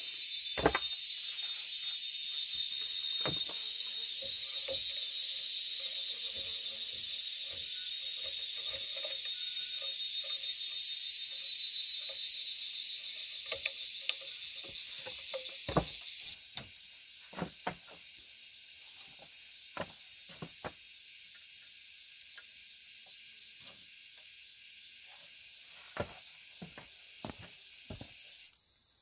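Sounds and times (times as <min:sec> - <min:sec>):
insects buzzing: 0:00.0 - 0:29.0
bamboo knocks and clicks: 0:00.6 - 0:01.0, 0:03.2 - 0:03.6, 0:13.5 - 0:16.7.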